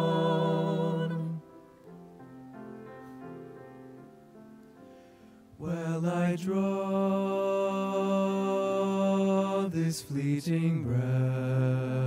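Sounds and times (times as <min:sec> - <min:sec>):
men singing in harmony: 0:00.0 - 0:01.4, 0:05.6 - 0:12.0
quick breaths: 0:04.8 - 0:05.5.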